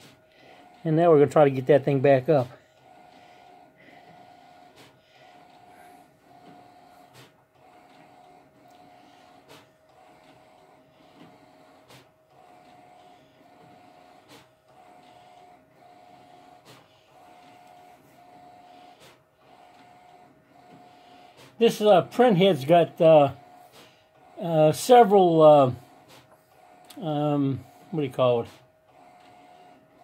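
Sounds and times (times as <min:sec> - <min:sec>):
printhead whirring: 0:00.0 - 0:30.0
paper feed click: 0:06.4 - 0:15.4.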